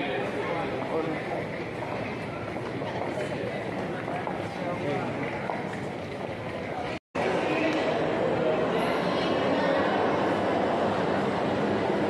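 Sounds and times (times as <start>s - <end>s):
airport terminal ambience: 0.0s - 12.0s
murmur of distant voices: 0.0s - 12.0s.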